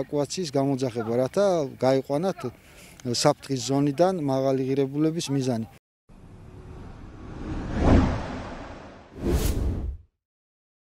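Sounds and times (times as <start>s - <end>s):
whoosh: 6.1s - 10.1s.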